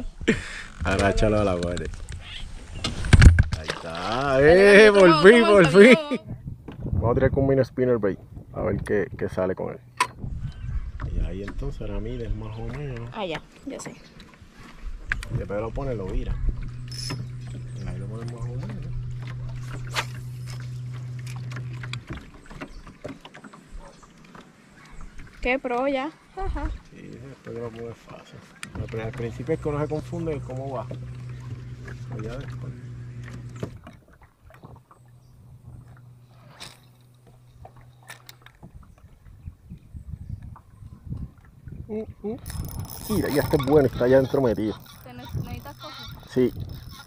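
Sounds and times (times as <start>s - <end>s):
electric motor humming: 15.5s - 22.3s, 29.0s - 34.0s, 34.8s - 38.6s, 42.4s - 47.0s.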